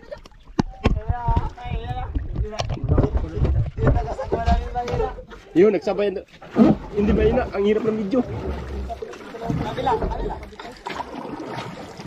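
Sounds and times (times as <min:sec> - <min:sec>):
water slapping against boat hull: 0:00.0 - 0:05.5, 0:06.3 - 0:12.0.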